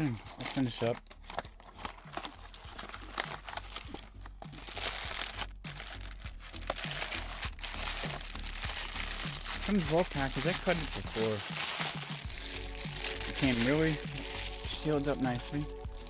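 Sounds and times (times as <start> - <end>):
plastic wrap crinkling: 0.0 - 15.9.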